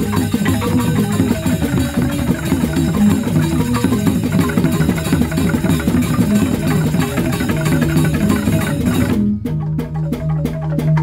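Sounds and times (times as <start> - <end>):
dance music on tuned percussion: 0.0 - 11.0.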